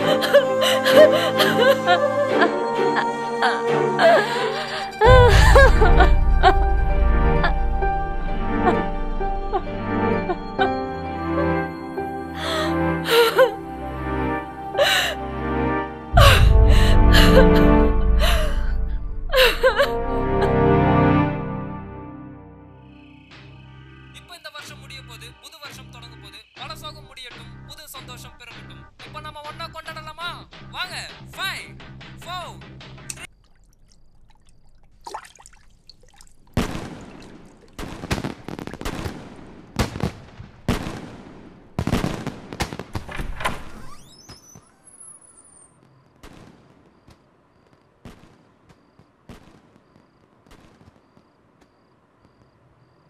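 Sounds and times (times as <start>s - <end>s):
wavering wailing cry: 0.0s - 6.1s
woman sobbing: 0.0s - 13.9s, 14.6s - 15.4s, 16.2s - 20.8s
slow sad orchestral score: 0.0s - 23.3s
watery plinks and trickles: 33.1s - 38.1s
fireworks bangs with crackling: 36.6s - 52.6s.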